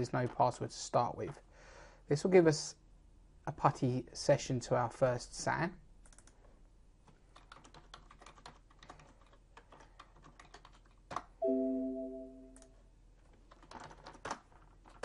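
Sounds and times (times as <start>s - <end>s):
computer keyboard typing: 6.0s - 6.4s, 7.3s - 12.7s, 13.3s - 15.0s
computer alert chime: 11.4s - 12.6s.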